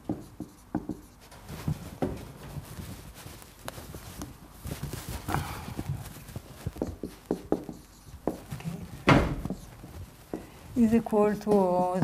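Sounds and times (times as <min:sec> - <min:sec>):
marker tapping on whiteboard: 0:00.0 - 0:01.2, 0:06.7 - 0:08.5
eraser rubbing whiteboard: 0:00.0 - 0:02.0, 0:06.2 - 0:10.3.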